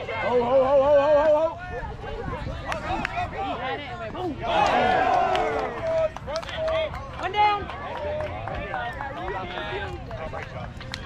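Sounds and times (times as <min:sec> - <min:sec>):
people talking and calling out: 0:00.0 - 0:11.0
loud shout: 0:04.2 - 0:08.2.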